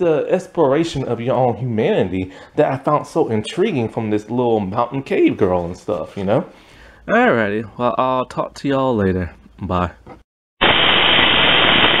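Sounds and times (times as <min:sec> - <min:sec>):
tv static hiss: 0:10.6 - 0:12.0.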